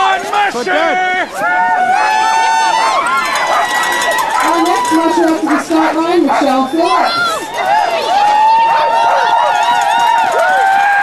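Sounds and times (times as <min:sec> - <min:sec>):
sled dogs yelping and howling: 0:01.4 - 0:11.0.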